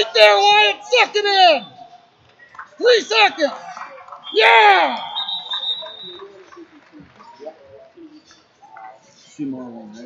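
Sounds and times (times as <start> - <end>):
faint voices: 0.0 - 10.0
referee's whistle: 4.2 - 6.4.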